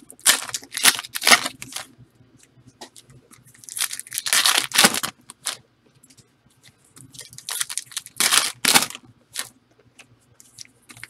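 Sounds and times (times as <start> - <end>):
foil wrappers tearing and crinkling: 0.2 - 1.8, 3.6 - 5.6, 7.2 - 9.5.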